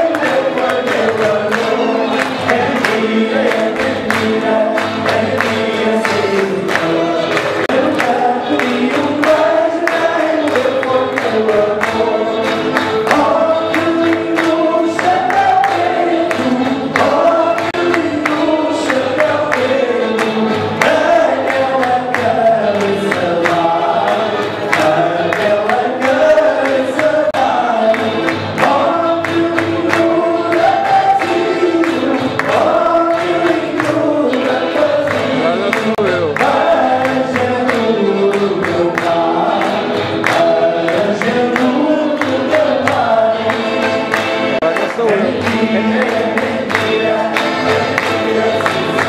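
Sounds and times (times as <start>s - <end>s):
guitar accompaniment: 0.0s - 49.0s
hands clapping in a beat: 0.0s - 49.0s
men singing together: 0.0s - 49.0s.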